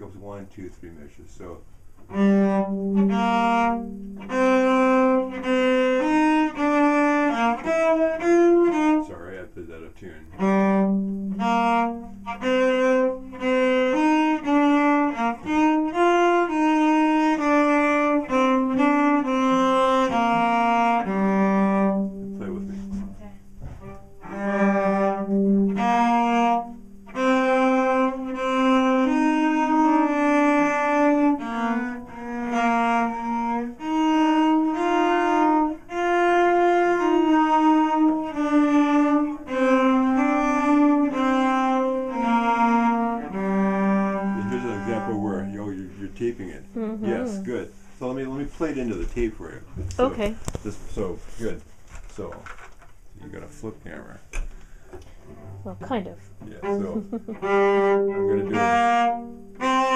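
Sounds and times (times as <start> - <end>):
bowed cello detached notes: 2.0 - 59.9.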